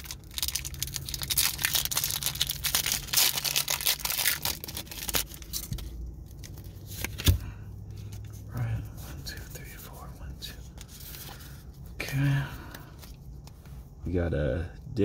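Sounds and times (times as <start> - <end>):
foil wrapper crinkling: 0.0 - 7.2
cards handling: 0.0 - 8.4.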